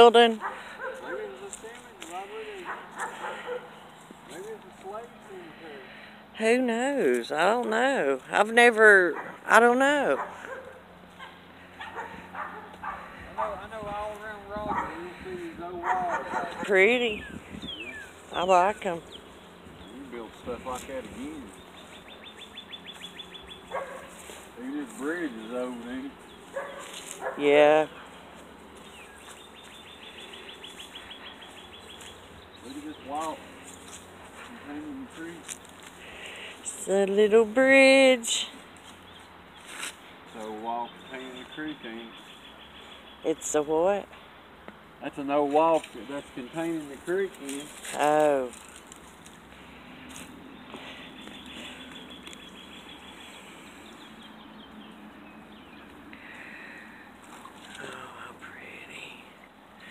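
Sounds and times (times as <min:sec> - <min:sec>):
birds chirping faintly: 0:00.0 - 0:59.9
songbird singing: 0:00.0 - 0:59.9
steady outdoor hiss: 0:00.0 - 0:59.9.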